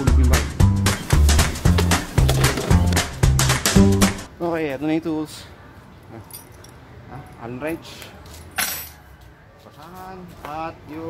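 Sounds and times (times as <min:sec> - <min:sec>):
brisk polka music: 0:00.0 - 0:04.3.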